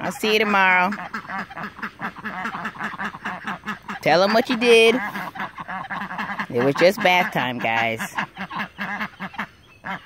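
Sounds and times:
ducks quacking: 0.0 - 10.0.

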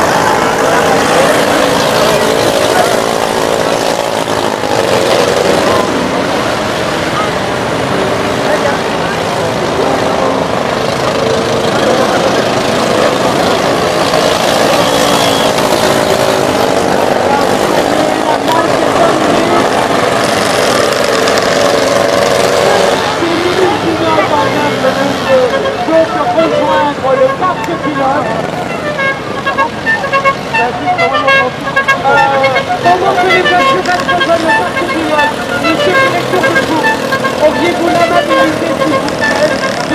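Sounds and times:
stock car engines racing: 0.0 - 39.9.

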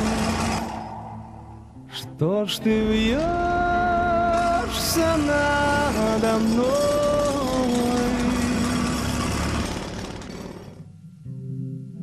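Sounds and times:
low sustained accompaniment: 0.0 - 9.2
person singing: 1.8 - 9.1.

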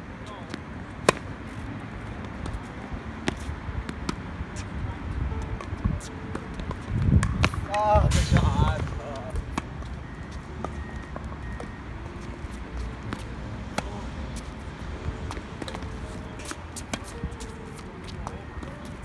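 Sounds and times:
tennis balls struck with racquets: 0.3 - 19.0.

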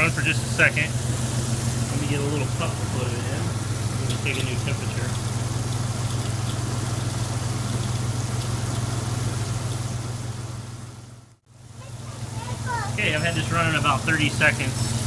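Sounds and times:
water running into a bucket: 0.0 - 11.1
truck engine idling: 0.0 - 15.0.

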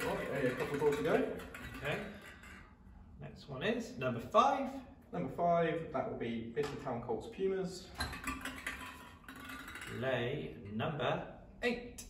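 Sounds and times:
plastic balls rattling in glass bowl: 0.0 - 2.7, 8.0 - 10.2.

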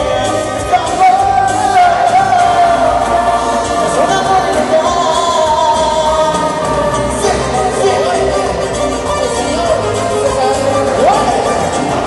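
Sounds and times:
lead singer singing: 0.0 - 12.0
live band music: 0.0 - 12.0
steady bass line: 0.0 - 12.0.

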